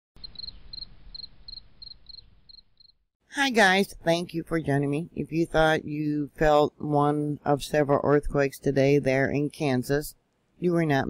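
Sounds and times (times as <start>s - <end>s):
cricket chirping: 0.2s - 3.0s.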